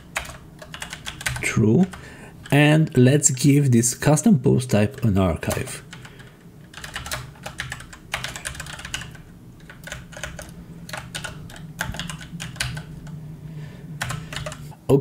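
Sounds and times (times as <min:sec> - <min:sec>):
keyboard typing: 0:00.0 - 0:02.7, 0:04.8 - 0:13.2, 0:14.0 - 0:14.7.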